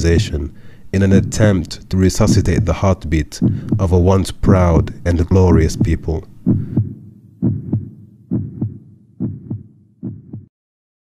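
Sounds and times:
heartbeat: 0.0 - 10.5.

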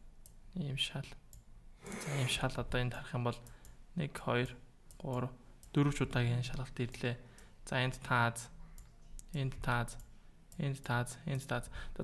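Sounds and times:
man speaking: 1.9 - 3.4.

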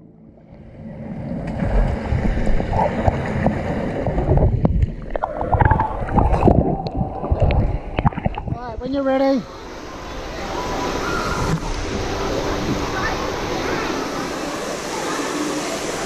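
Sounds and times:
water gurgling underwater: 1.3 - 8.6.

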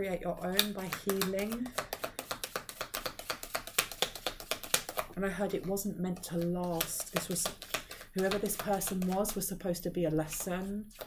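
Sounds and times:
cards being shuffled: 0.4 - 5.1, 5.7 - 9.4.

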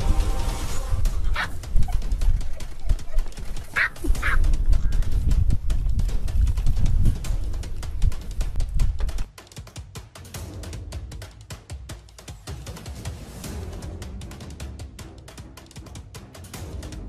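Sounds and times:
wind on microphone: 0.0 - 9.3
high animal calls: 1.2 - 5.0.

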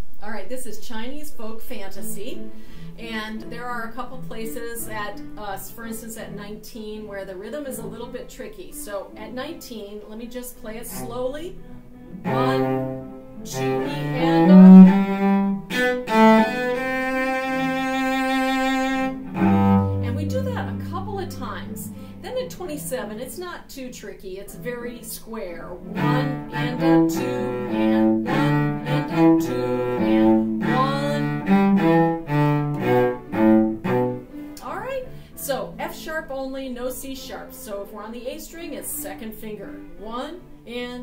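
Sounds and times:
woman's voice: 0.2 - 11.6, 12.3 - 12.8, 13.5 - 14.6, 20.0 - 31.4, 34.6 - 41.0
cello bowed slowly: 10.4 - 23.4, 24.6 - 35.7.

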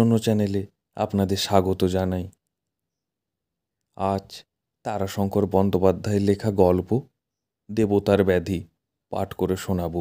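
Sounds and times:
narrator speaking: 0.0 - 2.4, 3.9 - 7.1, 7.7 - 10.0.

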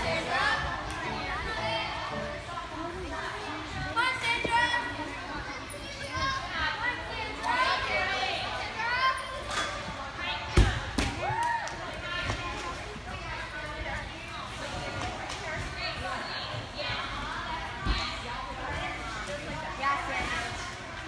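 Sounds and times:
voices in gym hall: 0.0 - 21.0.

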